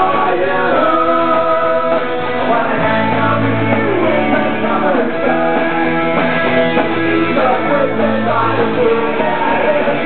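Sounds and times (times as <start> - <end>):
man singing: 0.0 - 6.1, 6.8 - 10.0
pop-punk band playing: 0.0 - 10.0.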